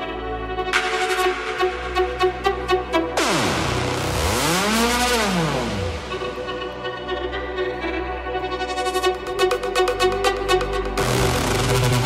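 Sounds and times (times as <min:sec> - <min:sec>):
synthesizer tone sweeping: 0:00.7 - 0:07.6, 0:08.5 - 0:12.0.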